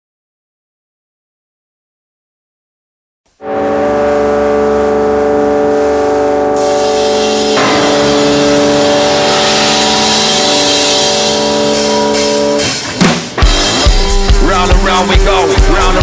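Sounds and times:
electric drone chord: 0:03.4 - 0:16.0
rushing noise: 0:03.8 - 0:16.0.

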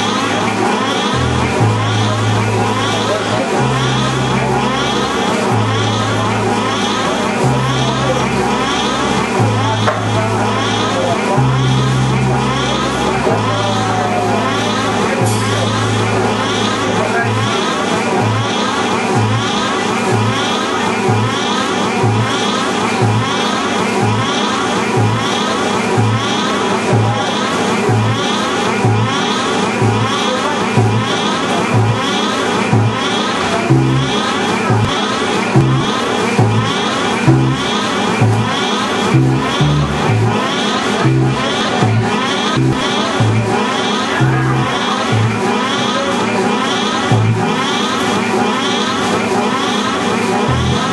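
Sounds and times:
bass guitar notes: 0:00.0 - 0:20.4, 0:22.0 - 0:25.3, 0:25.9 - 0:27.2, 0:27.8 - 0:30.2, 0:30.8 - 0:45.6, 0:47.1 - 0:47.6, 0:50.5 - 0:50.9.

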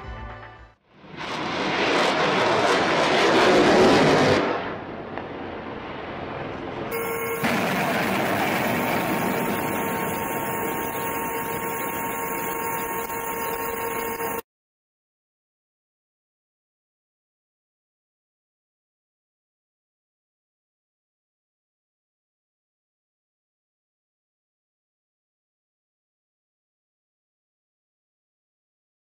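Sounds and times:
steady roar with hum: 0:00.9 - 0:14.4
missile launch roar: 0:01.0 - 0:06.1, 0:07.0 - 0:13.1.

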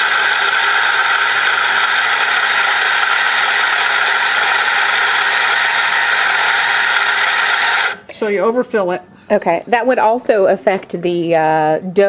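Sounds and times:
electric coffee grinder running: 0:00.0 - 0:08.0.

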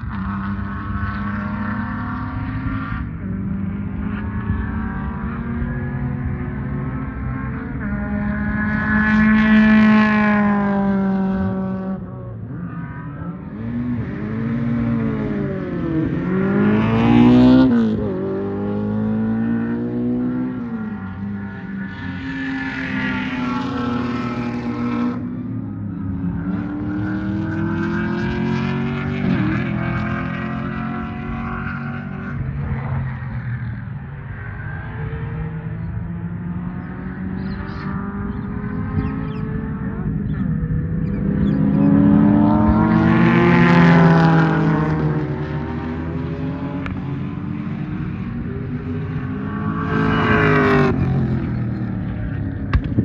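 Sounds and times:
race car engines: 0:00.0 - 0:53.0.

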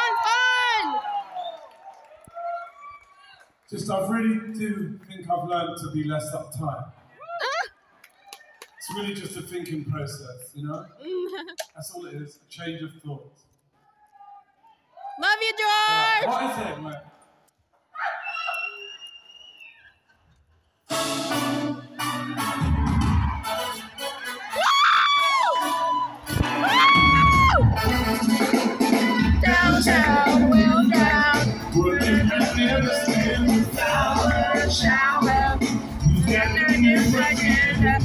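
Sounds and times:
organ playing: 0:20.9 - 0:24.6, 0:27.7 - 0:38.0.

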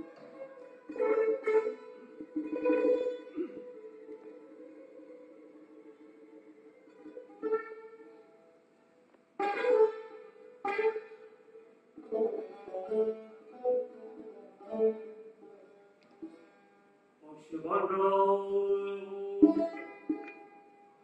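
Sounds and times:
plucked lute notes: 0:00.0 - 0:21.0.

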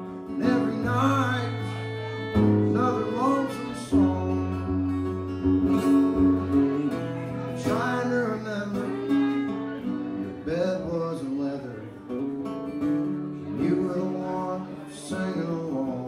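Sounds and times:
bowed fiddle: 0:00.0 - 0:11.9
acoustic guitar strumming: 0:00.0 - 0:16.0.

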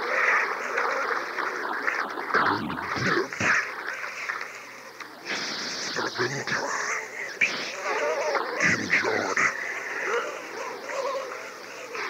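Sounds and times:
indistinct speech: 0:00.0 - 0:12.0.

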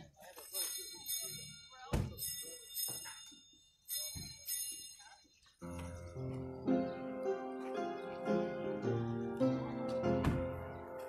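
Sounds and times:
sustained keyboard music: 0:00.4 - 0:11.0.

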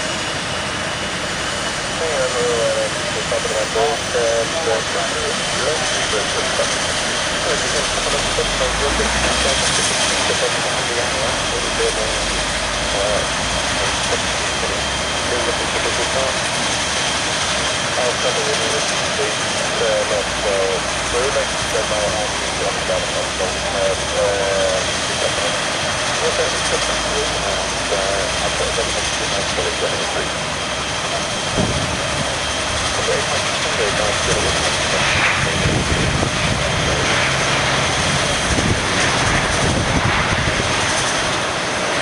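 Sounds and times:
turboprop engine running: 0:00.0 - 0:42.0.

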